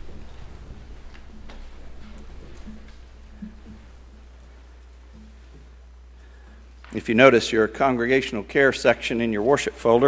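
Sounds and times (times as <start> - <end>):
footsteps on wooden platform: 0.0 - 6.0
steady low hum: 0.0 - 10.0.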